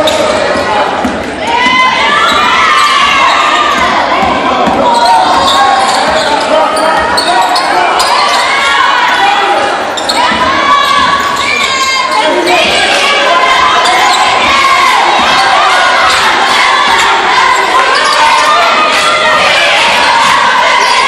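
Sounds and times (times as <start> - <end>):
people calling out: 0.0 - 21.0.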